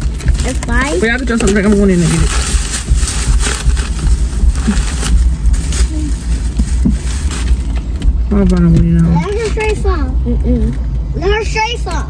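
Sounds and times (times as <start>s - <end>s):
plastic bag rustling: 0.0s - 9.9s
steady low rumble: 0.0s - 12.0s.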